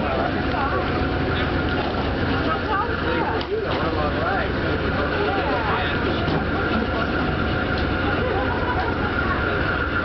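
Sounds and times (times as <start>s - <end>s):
people talking: 0.0s - 10.0s
train rumble and hum: 0.0s - 10.0s.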